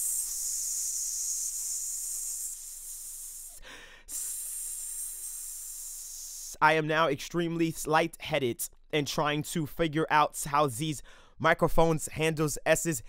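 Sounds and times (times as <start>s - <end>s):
man hissing into microphone: 0.0s - 6.8s.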